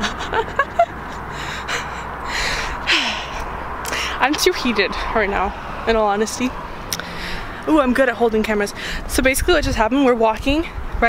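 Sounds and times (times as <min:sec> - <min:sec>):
person gasping and laughing breaths: 0:00.0 - 0:04.2
low street rumble: 0:00.0 - 0:11.0.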